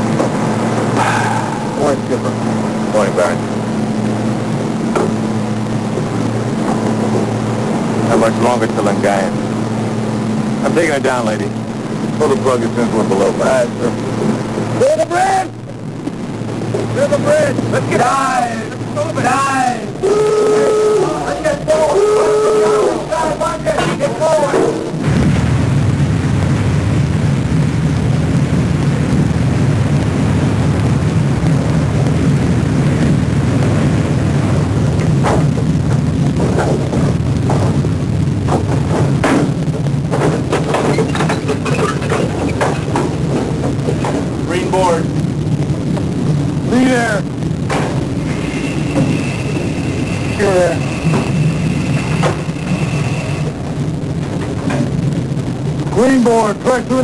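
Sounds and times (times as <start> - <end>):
continuous low rumble: 0.0 - 57.0
steady high tone: 1.0 - 3.6, 48.1 - 54.2
metallic clanks and knocks: 38.5 - 44.3.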